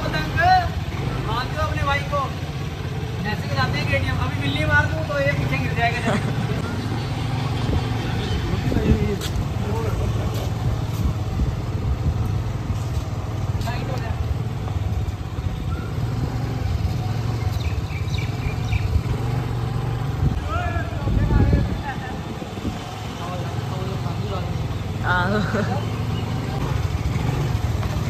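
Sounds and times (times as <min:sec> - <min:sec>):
motorcycle engine running: 0:00.0 - 0:28.0.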